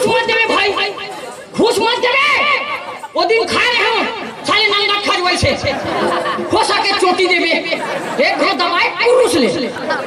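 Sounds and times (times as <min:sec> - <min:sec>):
men talking into microphones: 0:00.0 - 0:10.0.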